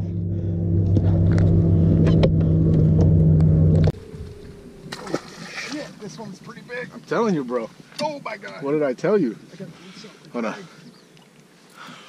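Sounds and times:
boat motor humming: 0.0 - 7.1.

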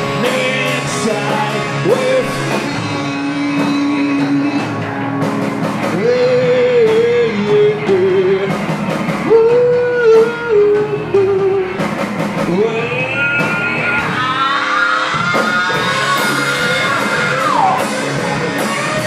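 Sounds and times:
bass guitar: 0.0 - 19.0
drum kit: 0.0 - 19.0
electric guitars: 0.0 - 19.0.

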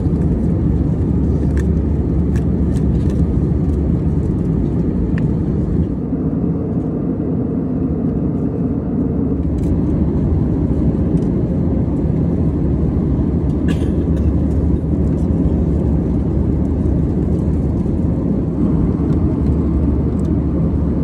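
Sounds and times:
airplane cabin roar: 0.0 - 21.0.

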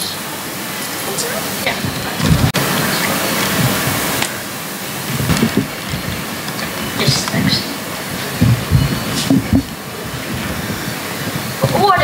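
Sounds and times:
audience applause: 1.0 - 12.0
microphone handling bumps: 1.7 - 4.4, 5.0 - 12.0.

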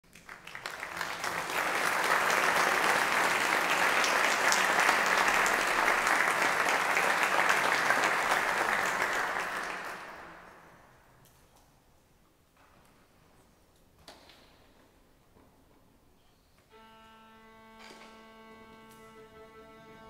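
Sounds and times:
audience applause: 0.0 - 10.6.

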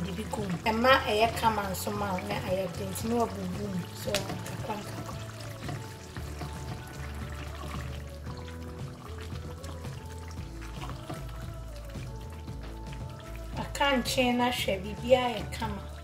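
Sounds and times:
stew bubbling in a pan: 0.0 - 14.4
background music: 0.0 - 16.0.

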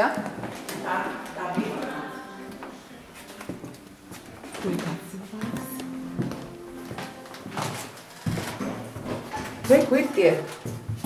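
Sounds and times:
indistinct voices: 0.0 - 6.5.

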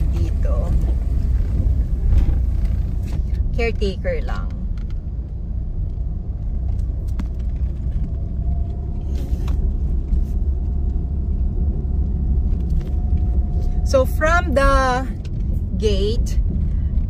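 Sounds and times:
car engine and road noise: 0.0 - 17.0.

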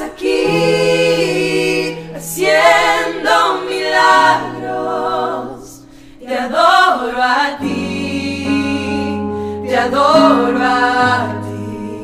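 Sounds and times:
women singing in harmony: 0.0 - 12.0.

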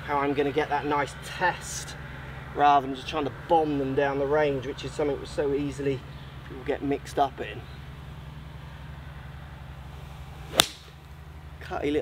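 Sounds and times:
golf club striking ball: 10.5 - 11.1.

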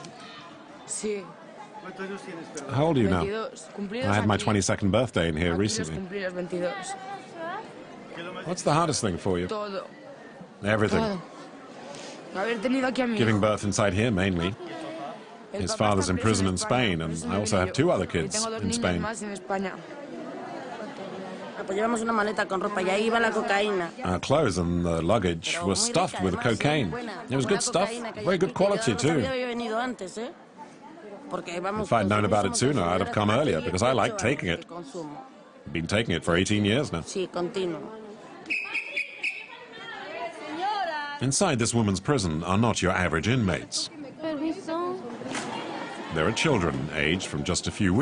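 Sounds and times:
background chatter: 0.0 - 48.0
person speaking: 10.6 - 11.2, 15.6 - 19.2, 25.4 - 29.4.

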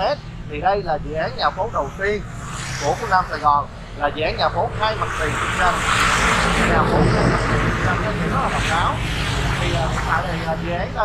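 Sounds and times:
man speaking: 0.0 - 2.2, 2.8 - 11.0
steady rushing noise: 0.0 - 11.0.

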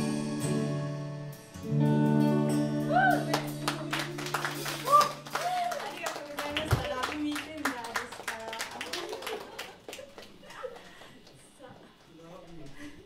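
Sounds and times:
audience applauding: 3.2 - 12.2.

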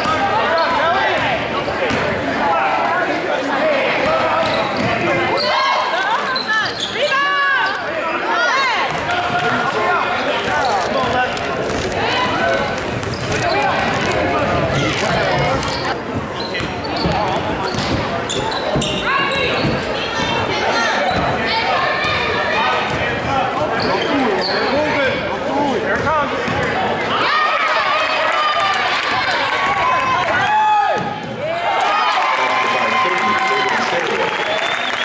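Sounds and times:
sneakers squeaking: 0.0 - 2.2, 4.0 - 8.0, 10.4 - 26.8.

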